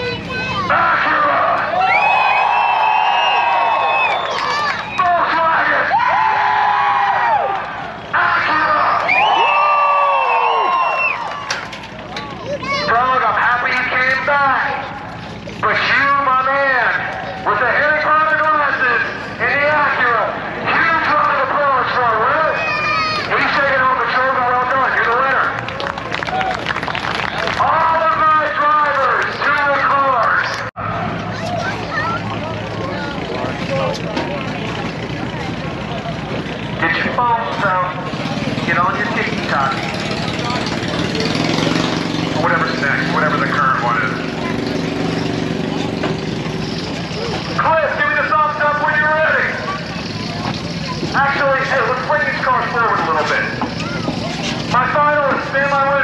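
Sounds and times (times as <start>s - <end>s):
crowd chatter: 0.0s - 6.6s, 7.2s - 56.0s
car engines idling: 0.0s - 56.0s.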